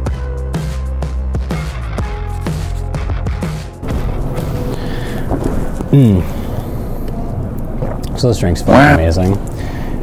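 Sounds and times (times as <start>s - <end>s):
man saying mmm: 5.9s - 6.4s.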